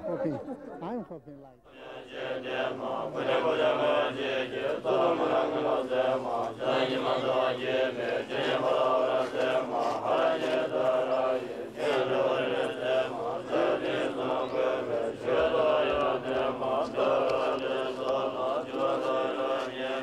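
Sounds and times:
voices chanting prayers: 0.0 - 20.0.

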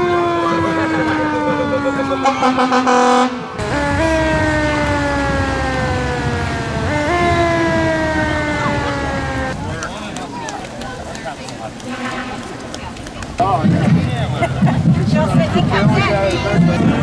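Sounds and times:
fire siren wailing: 0.0 - 9.8.

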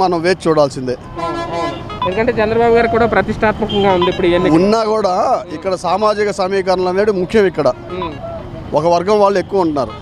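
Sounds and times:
man talking: 0.0 - 1.1, 4.4 - 10.0
street traffic: 0.0 - 10.0
vehicle horn honking: 1.1 - 2.7, 3.6 - 6.0, 7.7 - 8.4.

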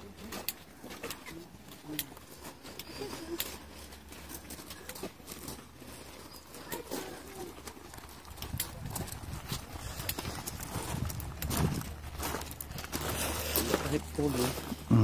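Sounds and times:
footsteps on gravel: 0.0 - 15.0.

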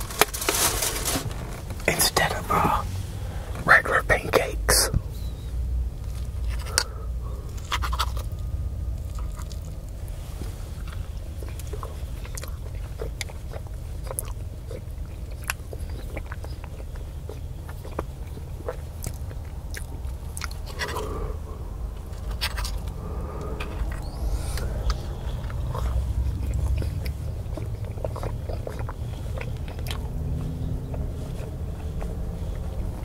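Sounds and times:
close chewing: 0.0 - 33.0
steady low rumble: 0.0 - 33.0.

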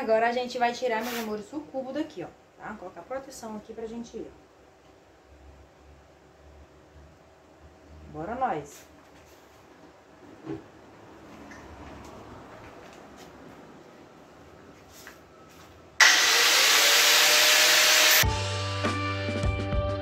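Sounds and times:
angle grinder cutting steel: 16.0 - 18.3
background music: 18.2 - 20.0.

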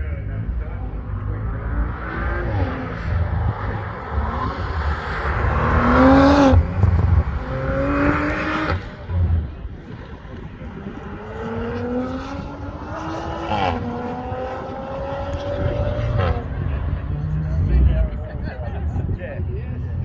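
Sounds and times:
car engine accelerating hard: 0.0 - 19.0
wind buffeting microphone: 2.6 - 16.5.

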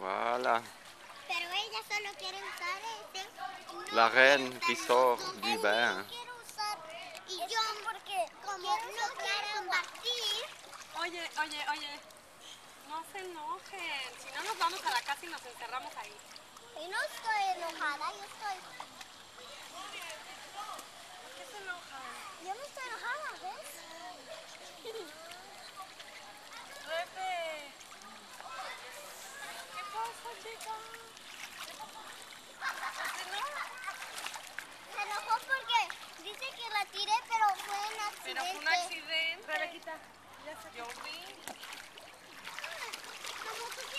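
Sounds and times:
children talking and calling out: 1.0 - 11.0, 16.2 - 43.9.

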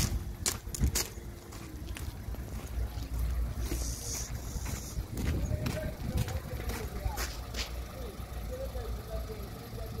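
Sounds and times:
low rumble: 0.0 - 7.7
faint distant voices: 1.0 - 10.0.

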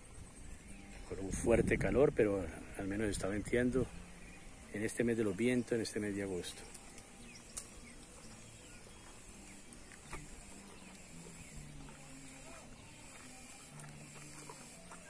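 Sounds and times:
faint low drone: 0.0 - 15.0
cow chewing: 3.1 - 15.0.

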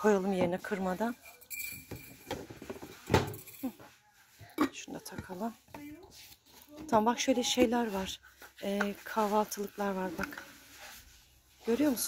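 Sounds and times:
cardboard rustling and scraping: 5.4 - 12.0.

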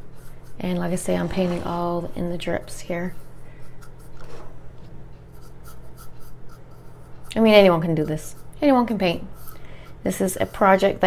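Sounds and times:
scratchy paintbrush strokes: 0.0 - 4.6, 5.2 - 11.0
low steady hum: 0.0 - 11.0.

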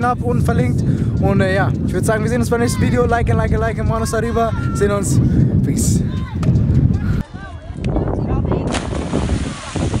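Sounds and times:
heavy splash into water: 8.7 - 10.0
churning water rushing: 8.8 - 10.0.

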